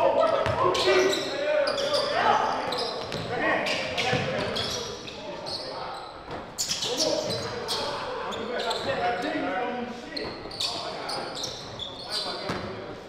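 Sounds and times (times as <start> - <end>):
players' voices: 0.0 - 13.0.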